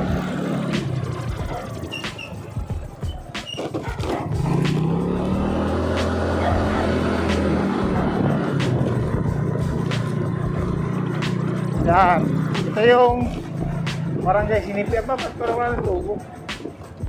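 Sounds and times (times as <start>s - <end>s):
motorcycle engine running: 0.0s - 17.0s.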